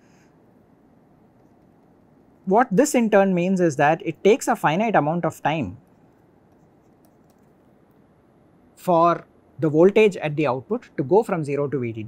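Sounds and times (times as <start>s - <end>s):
stylus writing on pen tablet: 5.8s - 7.8s.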